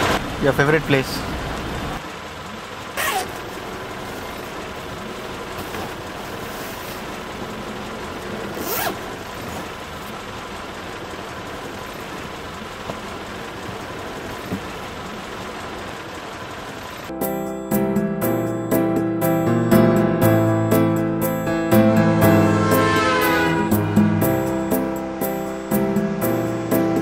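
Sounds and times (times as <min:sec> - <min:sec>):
car interior hum: 0:00.0 - 0:27.0
zipper on fabric bag: 0:08.6 - 0:09.0.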